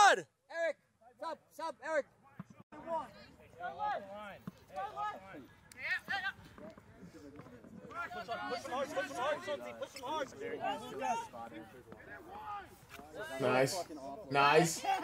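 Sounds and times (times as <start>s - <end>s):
voices shouting and calling out: 0.0s - 15.0s.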